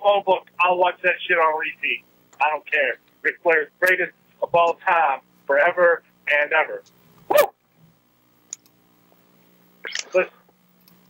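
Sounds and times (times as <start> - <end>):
man shouting woo: 7.3 - 7.5.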